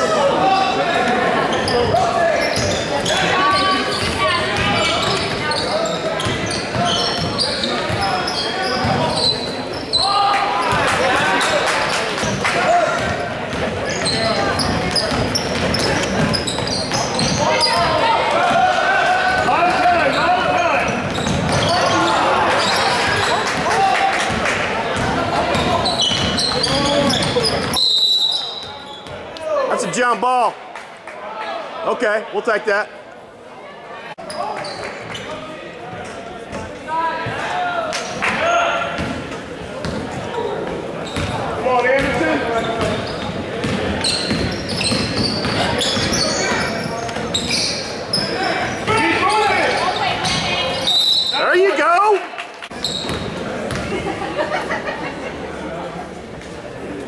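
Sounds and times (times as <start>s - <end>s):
echoing crowd voices: 0.0s - 57.0s.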